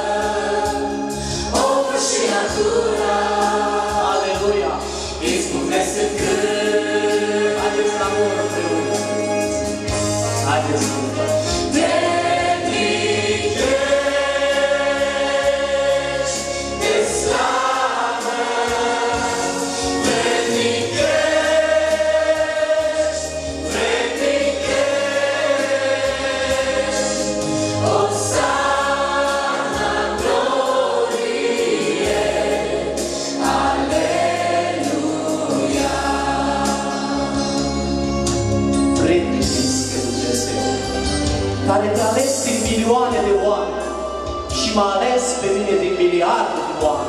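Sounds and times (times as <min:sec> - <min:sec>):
group singing a hymn: 0:00.0 - 0:38.3.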